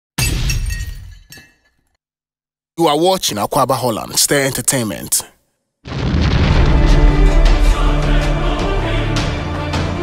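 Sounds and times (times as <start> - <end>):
glass shattering: 0.2 - 2.0
glass clink: 0.5 - 2.0.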